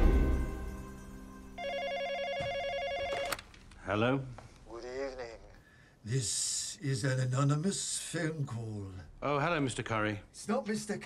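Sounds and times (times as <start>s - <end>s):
film score music: 0.0s - 1.6s
telephone ringing: 1.6s - 3.5s.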